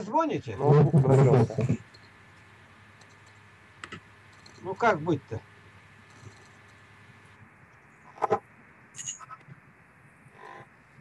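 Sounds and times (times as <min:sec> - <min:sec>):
garbled robotic voice: 0:00.6 - 0:01.8, 0:08.1 - 0:08.4.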